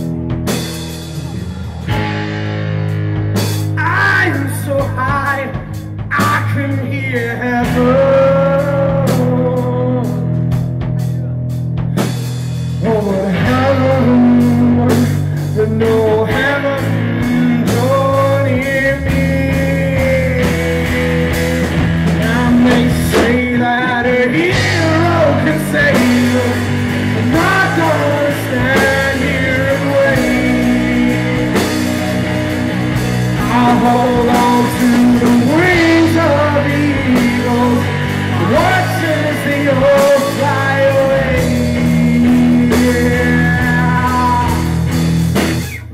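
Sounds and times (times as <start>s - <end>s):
bass guitar: 0.0s - 45.9s
drum kit: 0.0s - 45.9s
electric guitar: 0.0s - 45.9s.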